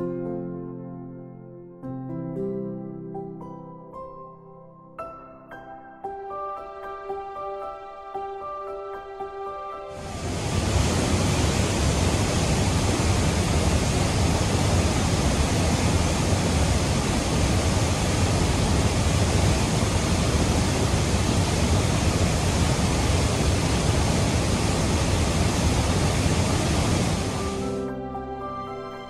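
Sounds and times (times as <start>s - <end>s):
stream rushing over rocks: 10.0s - 27.8s.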